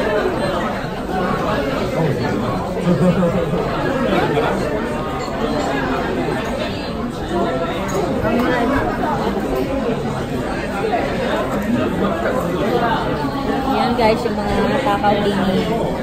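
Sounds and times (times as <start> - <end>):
restaurant chatter: 0.0 - 16.0.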